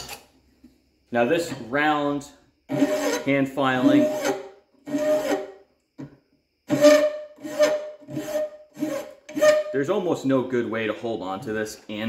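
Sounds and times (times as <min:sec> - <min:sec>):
hand file strokes on metal: 0:02.7 - 0:05.5, 0:06.7 - 0:09.7.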